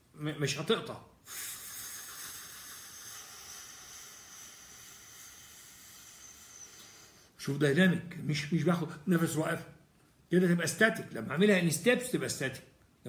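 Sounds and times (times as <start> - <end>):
man breathing out: 1.2 - 7.4.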